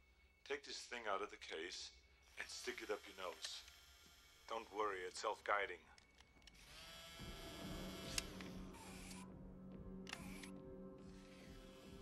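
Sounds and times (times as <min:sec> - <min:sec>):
quiet film score: 0:00.0 - 0:12.0
small mechanical whirs: 0:02.2 - 0:04.7, 0:06.5 - 0:09.3, 0:10.1 - 0:10.5.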